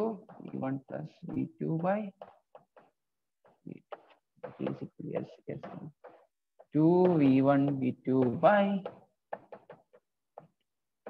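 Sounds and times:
chalk tapping on chalkboard: 0:00.1 - 0:11.0.

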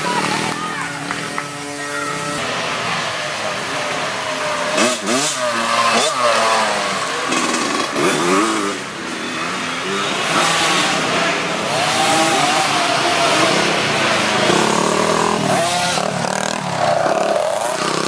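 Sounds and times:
dirt bike engines revving: 0:00.0 - 0:18.0.

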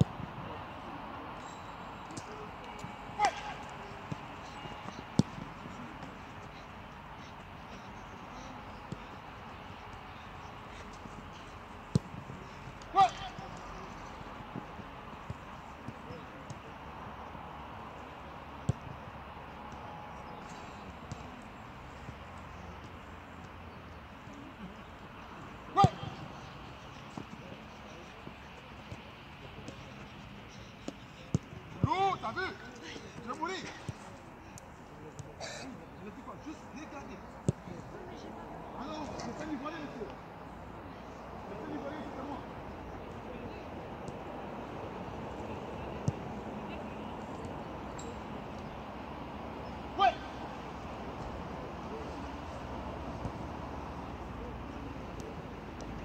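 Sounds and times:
faint indistinct voices: 0:00.0 - 0:56.0
footballs being kicked: 0:02.1 - 0:07.2, 0:08.7 - 0:16.7.

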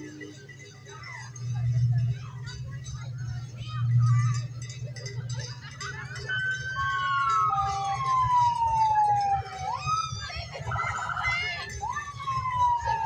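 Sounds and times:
low engine rumble: 0:00.0 - 0:13.0
voices: 0:00.0 - 0:13.0
siren wailing: 0:06.1 - 0:13.0.

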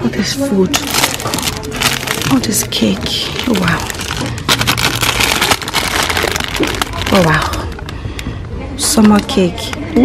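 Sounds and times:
plastic wrapping crinkling: 0:00.7 - 0:08.2.

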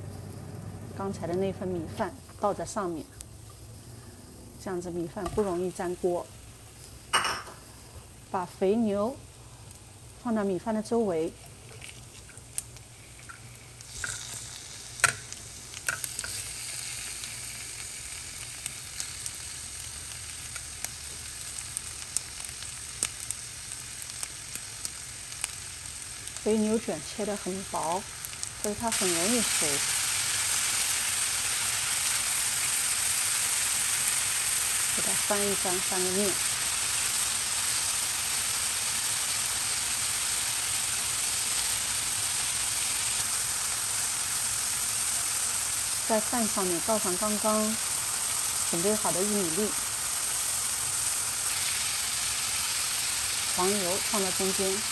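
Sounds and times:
beef sizzling in a pan: 0:02.0 - 0:54.9.

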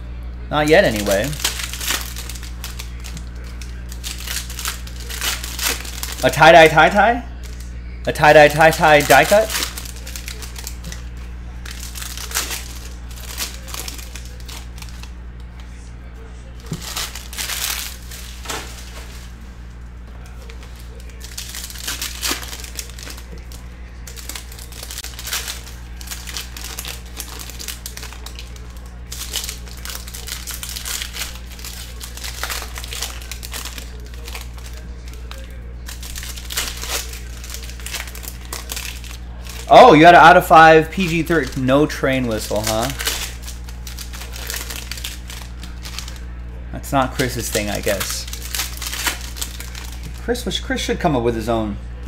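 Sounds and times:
steady low hum: 0:00.0 - 0:52.0
foil wrappers crinkling: 0:00.6 - 0:51.5.

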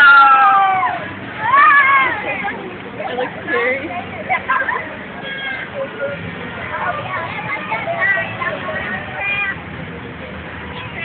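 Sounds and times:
outdoor crowd noise: 0:00.0 - 0:11.0.

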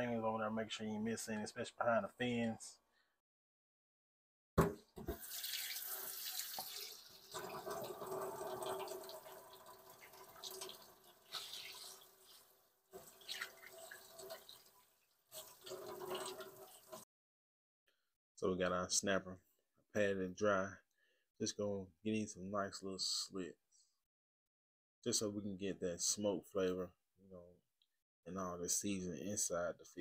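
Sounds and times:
faucet water splashing in sink: 0:05.0 - 0:17.0.

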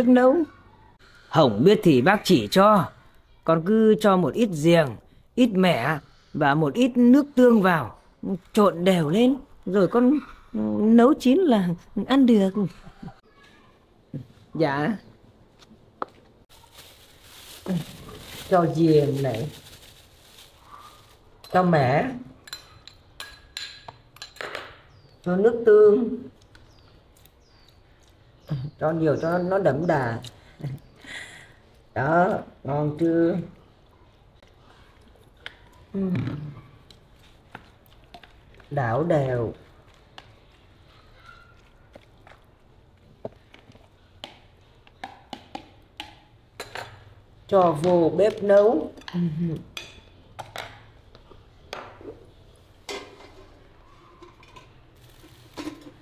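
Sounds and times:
plastic bag rustling: 0:16.5 - 0:21.4, 0:54.8 - 0:56.0.

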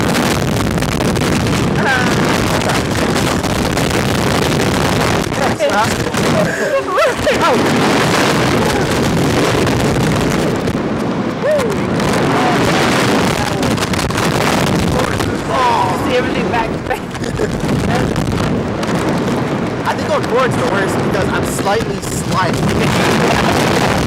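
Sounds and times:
wind rushing over microphone: 0:00.0 - 0:24.0
riders laughing and yelping: 0:05.8 - 0:09.0, 0:15.4 - 0:18.1.

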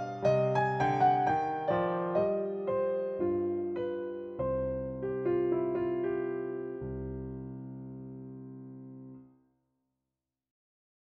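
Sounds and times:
held piano chord: 0:00.0 - 0:09.2.

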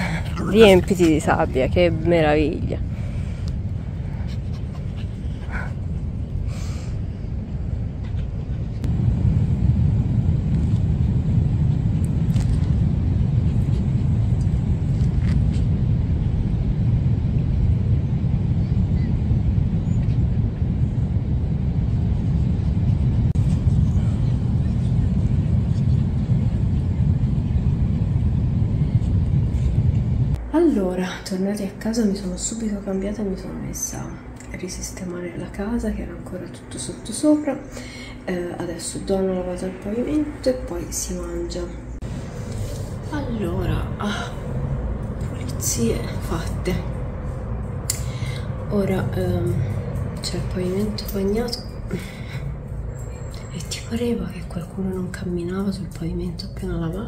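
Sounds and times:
wind buffeting microphone: 0:00.0 - 0:30.5.

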